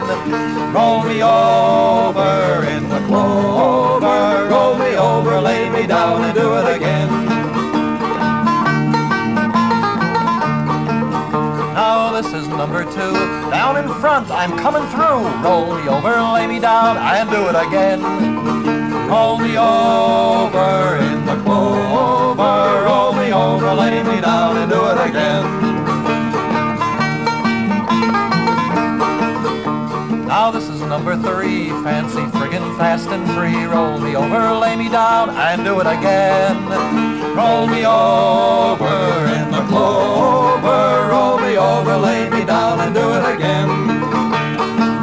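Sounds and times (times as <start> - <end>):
acoustic guitar: 0.0 - 45.0
banjo: 0.0 - 45.0.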